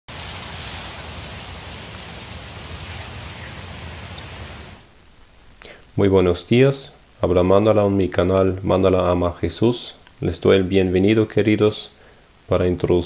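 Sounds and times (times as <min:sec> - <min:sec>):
steady hiss: 0:00.1 - 0:13.0
cricket chirping: 0:00.8 - 0:04.8.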